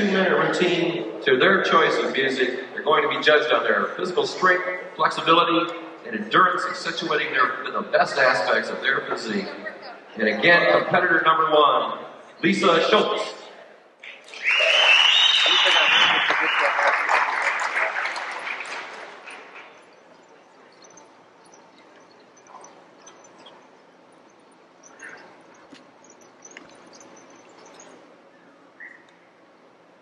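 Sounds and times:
audience applause and cheering: 14.1s - 21.2s
scattered small sounds: 17.9s - 28.4s.

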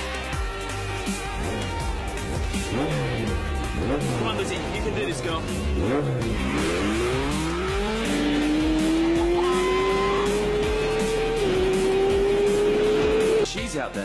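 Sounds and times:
motorcycle engine accelerating: 1.1s - 13.5s.

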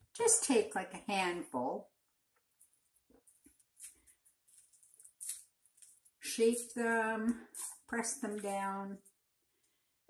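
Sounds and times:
soft squishing of sticky mixture: 1.8s - 10.0s.

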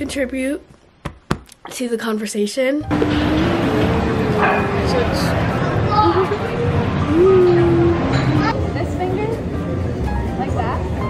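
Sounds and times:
long drawn-out note: 2.9s - 8.5s
crowd chatter: 2.9s - 11.0s.

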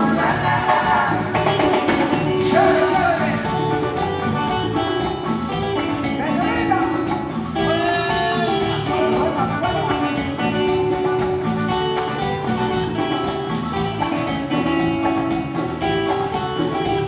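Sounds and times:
congas: 0.0s - 17.0s
drum kit: 0.0s - 17.0s
electric guitar: 0.0s - 17.0s
latin dance band playing: 0.0s - 17.0s.

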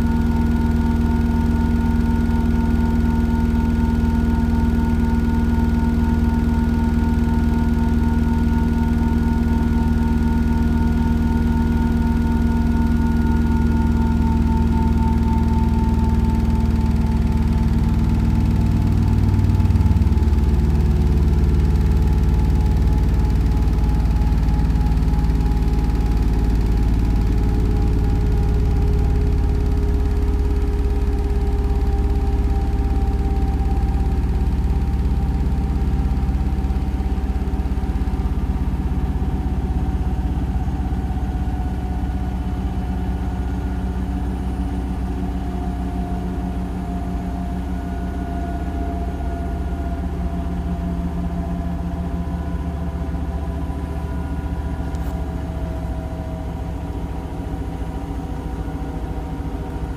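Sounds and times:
washing machine spinning: 0.0s - 59.9s.

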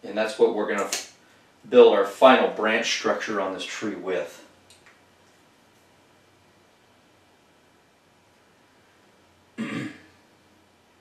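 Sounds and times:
man clearing throat: 9.6s - 10.1s.

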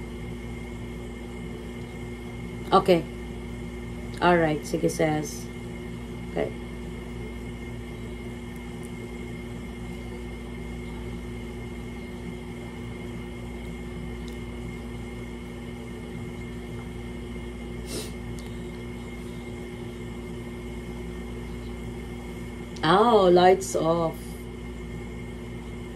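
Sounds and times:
steady appliance hum: 0.0s - 25.9s.

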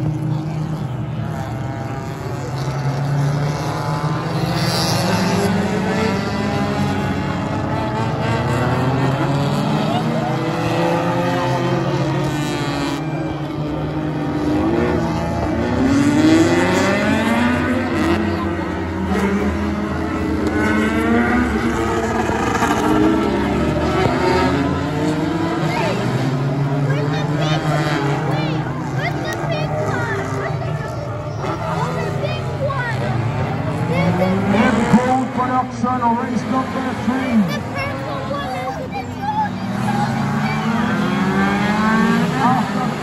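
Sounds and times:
distant race car engines accelerating: 0.0s - 43.0s
spectators' voices: 0.0s - 43.0s.

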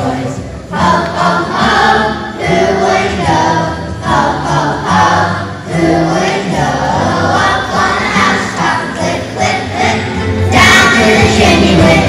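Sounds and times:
children's choir singing: 0.0s - 12.0s
low musical accompaniment: 0.0s - 12.0s.

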